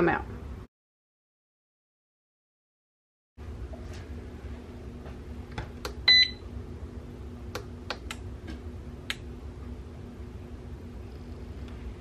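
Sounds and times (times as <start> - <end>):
low steady hum: 3.4 - 12.0.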